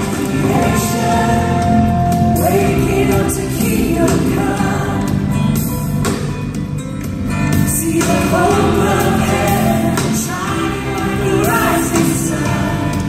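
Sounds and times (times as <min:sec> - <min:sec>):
choir and vocalists singing: 0:00.0 - 0:05.8, 0:07.4 - 0:13.0
worship band playing: 0:00.0 - 0:13.0.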